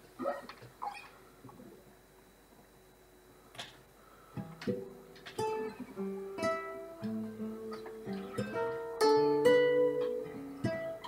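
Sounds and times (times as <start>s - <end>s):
fingerpicked acoustic guitar: 4.2s - 11.0s.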